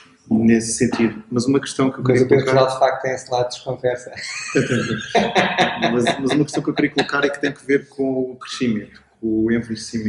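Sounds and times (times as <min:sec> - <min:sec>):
man laughing: 0:00.6 - 0:03.3, 0:03.9 - 0:10.0.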